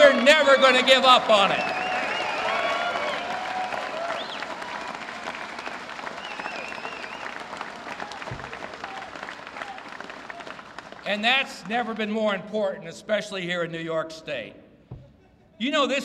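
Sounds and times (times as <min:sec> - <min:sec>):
audience applauding: 0:00.0 - 0:11.8.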